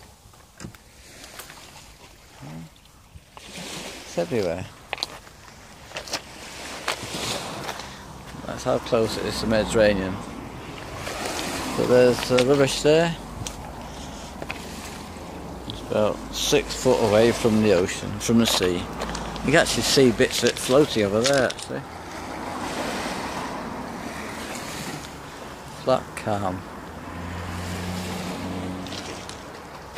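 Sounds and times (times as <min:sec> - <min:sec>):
small waves washing onto shore: 0:00.8 - 0:29.9
footsteps crunching on pebbles: 0:04.4 - 0:08.4.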